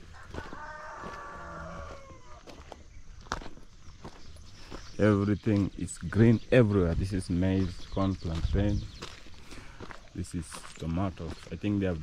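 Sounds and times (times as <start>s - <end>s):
rooster crowing: 0.0s - 2.7s
footsteps on stony dirt path: 0.0s - 12.0s.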